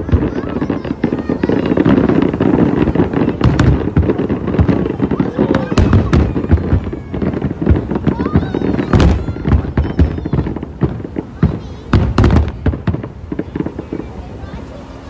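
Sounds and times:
firework shells booming: 0:00.0 - 0:14.6
firework sharp cracks: 0:00.0 - 0:15.0.

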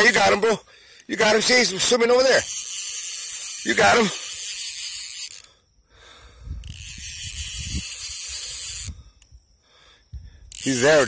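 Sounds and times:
fishing reel whirring: 0:00.0 - 0:09.4, 0:10.4 - 0:11.0.

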